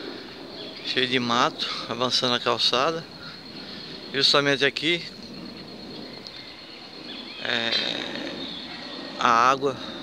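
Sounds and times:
faint chirp: 0.0 - 10.0
steady high-pitched tone: 0.0 - 10.0.

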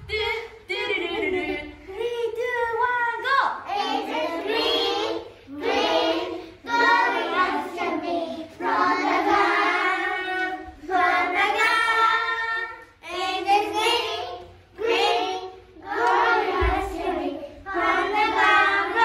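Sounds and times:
children singing: 3.6 - 19.0.

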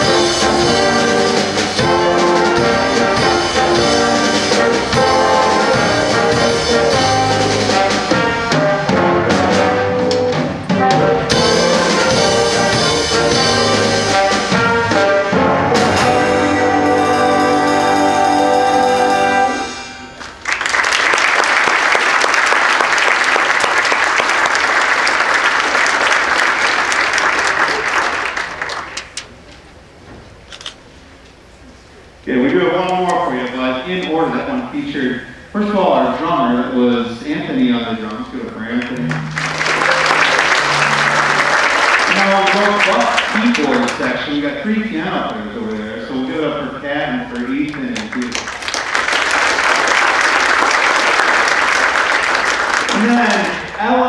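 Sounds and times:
stage band playing latin jazz: 0.0 - 20.5, 39.0 - 44.6
audience applauding: 20.2 - 29.2, 38.8 - 44.4, 47.7 - 53.8.

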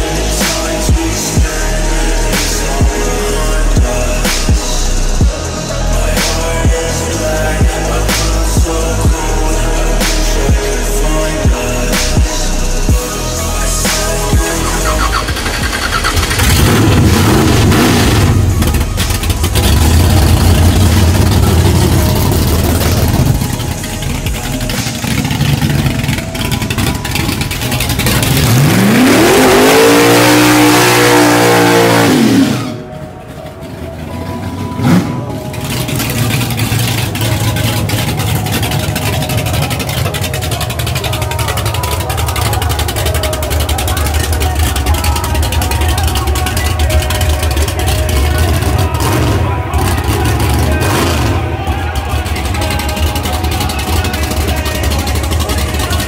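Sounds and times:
car engine revving hard: 13.8 - 33.0, 34.6 - 42.6, 46.8 - 51.6
tyres spinning: 13.9 - 30.8, 32.7 - 56.0.

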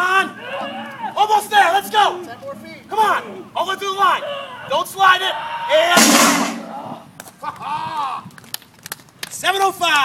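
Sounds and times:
person shouting: 4.1 - 7.1.

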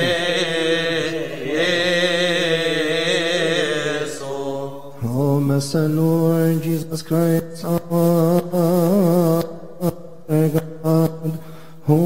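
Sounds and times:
man chanting a hymn: 0.0 - 12.0.

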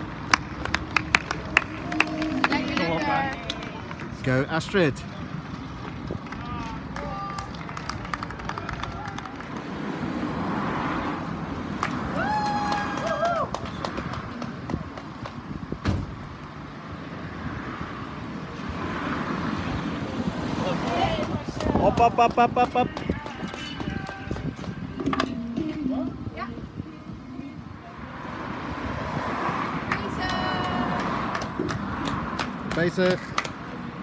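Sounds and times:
road traffic passing: 0.0 - 34.0.

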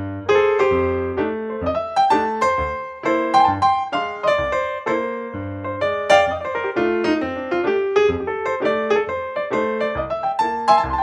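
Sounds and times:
solo piano music: 0.0 - 11.0.

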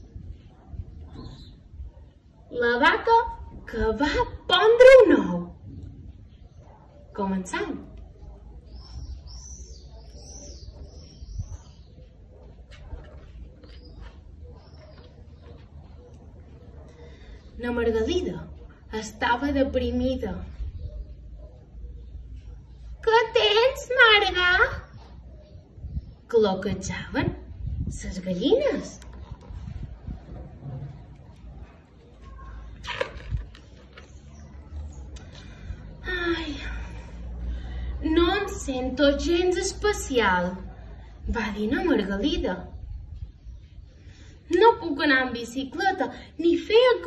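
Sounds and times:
songbird chirping: 4.8 - 40.8.

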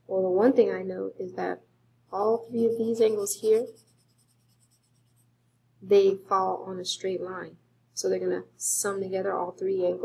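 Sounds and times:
woman speaking: 0.1 - 1.6, 2.2 - 3.8, 5.8 - 10.0
highlighter scratching paper: 2.2 - 5.3.

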